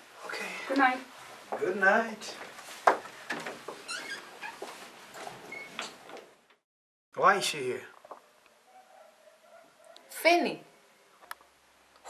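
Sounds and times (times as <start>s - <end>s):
door squeak: 3.8s - 4.6s, 5.4s - 6.0s.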